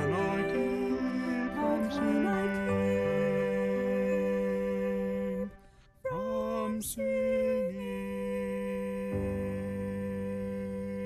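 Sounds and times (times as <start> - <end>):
held sung chord: 0.0 - 11.0.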